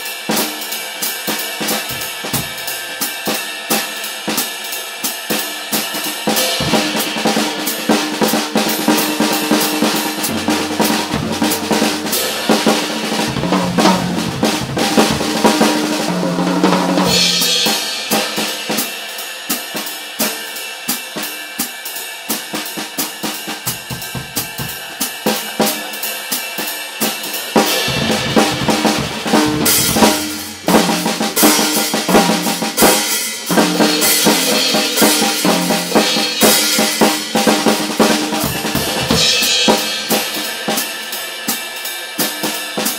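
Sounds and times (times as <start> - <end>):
cymbals keeping time: 1.6 - 2.9, 6.3 - 18.6, 27.0 - 32.6, 33.5 - 41.4
toms and bass drum: 1.6 - 2.9, 6.3 - 18.4, 23.5 - 25.7, 27.1 - 40.7.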